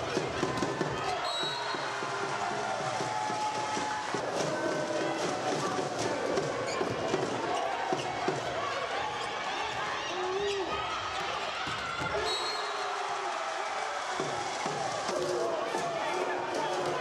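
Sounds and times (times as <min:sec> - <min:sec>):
crowd voices and cheering: 0:00.0 - 0:17.0.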